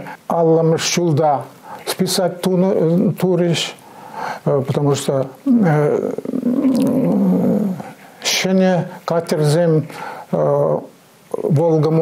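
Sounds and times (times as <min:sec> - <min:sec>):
old man's rough hesitation sound: 0:05.4 - 0:08.0.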